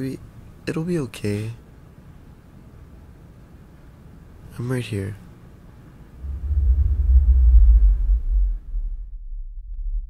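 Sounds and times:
deep low rumble drone: 0:06.2 - 0:10.0.

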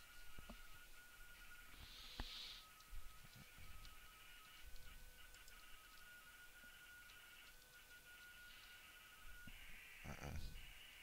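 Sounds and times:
thin steady whine: 0:00.0 - 0:11.0.

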